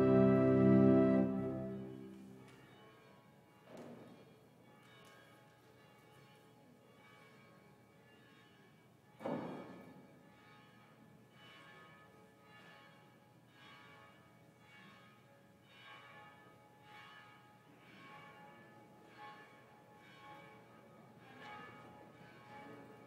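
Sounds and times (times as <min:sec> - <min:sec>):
faint church bells ringing: 0:00.0 - 0:23.0.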